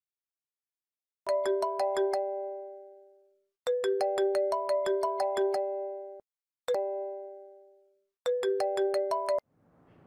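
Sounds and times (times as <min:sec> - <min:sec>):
phone ringtone chiming notes: 0:01.3 - 0:09.4.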